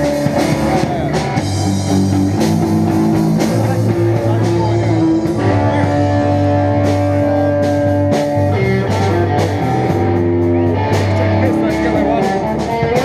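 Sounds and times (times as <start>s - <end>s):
amplified guitar: 0.0s - 13.0s
drum kit: 0.0s - 13.0s
low bass line: 0.0s - 13.0s.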